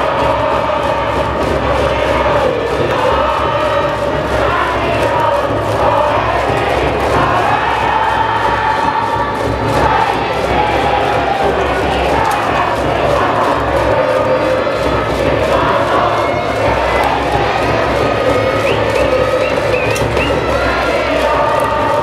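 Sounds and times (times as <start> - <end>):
crowd chanting: 0.0 - 22.0
steady drum beat: 0.0 - 22.0.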